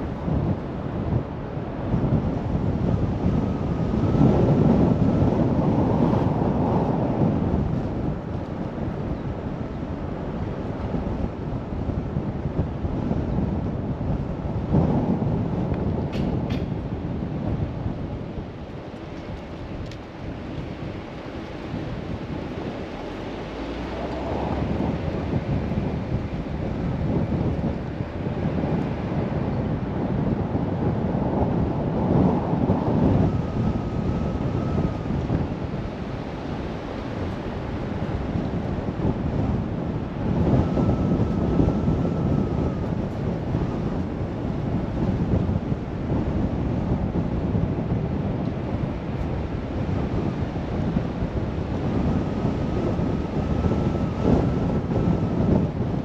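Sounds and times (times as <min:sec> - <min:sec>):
road noise: 0:00.0 - 0:56.0
wind rumbling on microphone: 0:00.0 - 0:56.0.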